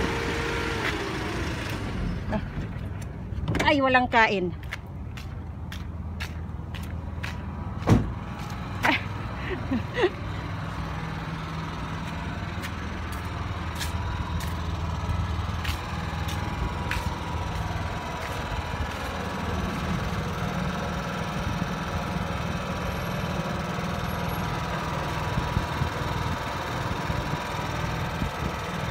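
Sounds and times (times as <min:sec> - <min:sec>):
generator engine running: 0:00.0 - 0:28.9.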